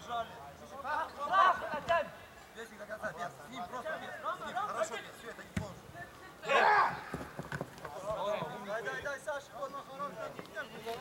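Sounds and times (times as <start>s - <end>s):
loud drawn-out yell: 6.4s - 7.1s
players shouting: 6.4s - 7.3s.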